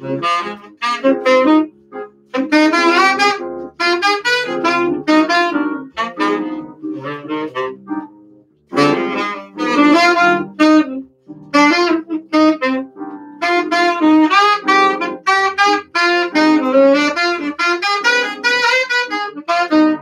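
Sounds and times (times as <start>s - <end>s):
electric piano chords: 0.0s - 20.0s
saxophone playing jazz melody: 0.0s - 20.0s.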